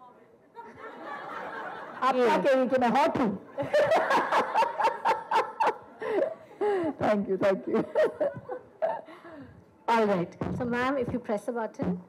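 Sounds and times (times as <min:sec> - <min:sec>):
woman laughing: 0:07.7 - 0:09.1.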